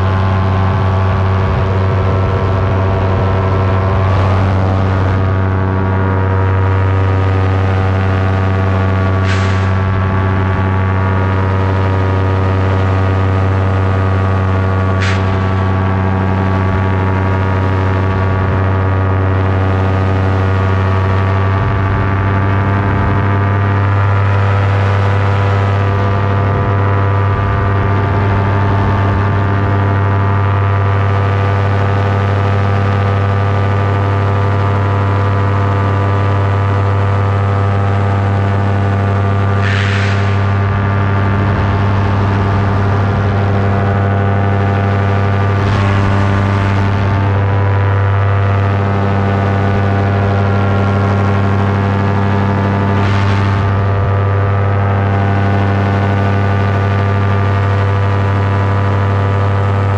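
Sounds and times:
paramotor engine droning: 0.0s - 59.9s.

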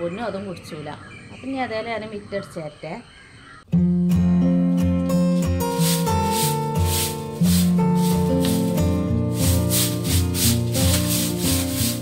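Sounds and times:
background music: 3.8s - 12.0s
broom sweeping tiled paving: 5.2s - 12.0s.

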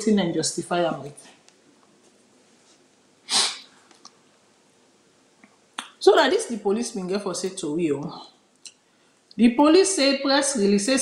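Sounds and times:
person talking: 0.0s - 1.4s, 5.8s - 8.4s, 9.4s - 11.0s.

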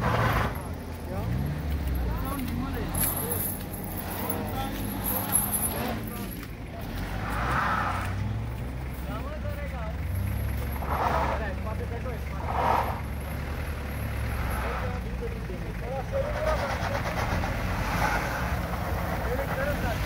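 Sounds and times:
car engine running: 0.0s - 20.0s
people's voices: 0.0s - 20.0s.

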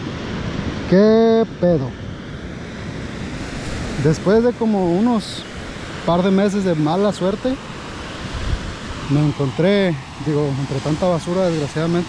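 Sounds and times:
ocean surf: 0.0s - 12.0s
wind noise on microphone: 7.8s - 11.5s.

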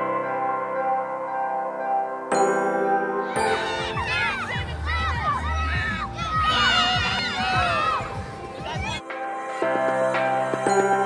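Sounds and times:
background music: 0.0s - 11.0s
children shouting and cheering: 3.2s - 9.1s.

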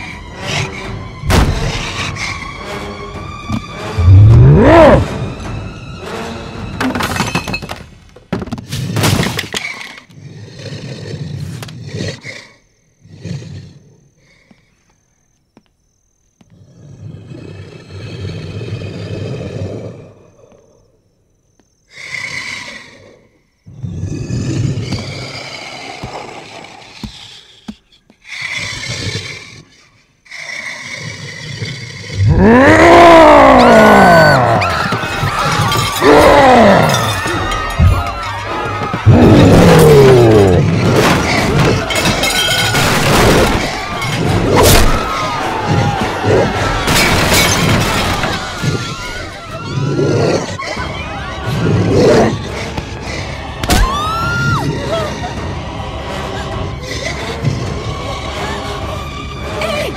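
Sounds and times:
dramatic music score: 0.0s - 8.2s, 50.6s - 59.9s
monster roar: 4.0s - 5.2s, 31.9s - 34.7s, 39.0s - 41.9s
raspy creature growls: 4.0s - 5.2s, 30.8s - 34.7s.

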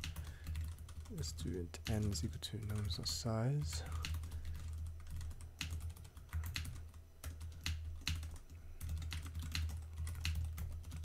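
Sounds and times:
computer keyboard typing: 0.0s - 11.0s
low steady hum: 0.0s - 11.0s.

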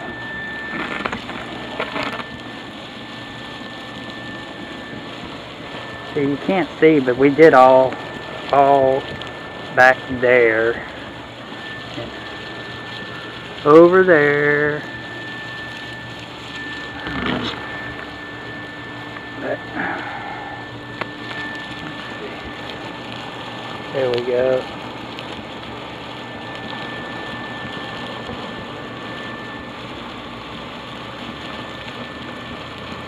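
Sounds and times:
insulation blower rushing air: 0.0s - 33.0s
thin high whine: 0.0s - 33.0s.

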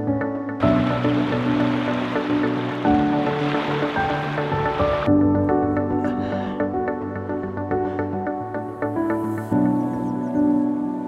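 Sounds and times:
background music with sustained notes: 0.0s - 11.0s
small waves lapping on shore: 0.6s - 5.1s.

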